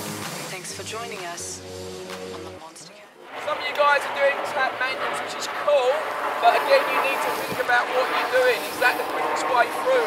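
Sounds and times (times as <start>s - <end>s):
voices talking outdoors: 0.5s - 10.0s.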